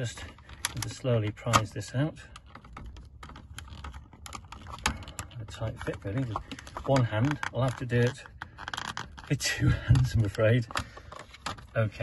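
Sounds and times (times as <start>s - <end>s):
plastic clicks and creaks: 0.0s - 12.0s.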